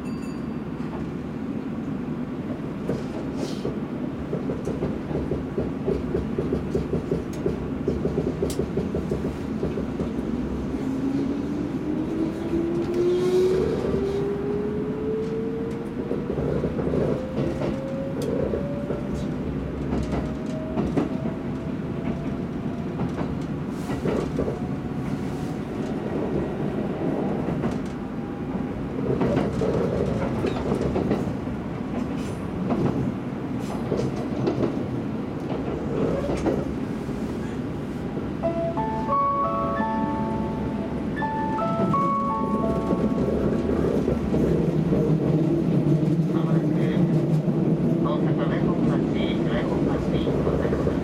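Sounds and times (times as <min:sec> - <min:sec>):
train rumbling on rails: 0:00.0 - 0:51.0
rail joint clacks: 0:02.8 - 0:10.5, 0:15.2 - 0:36.8, 0:38.4 - 0:51.0.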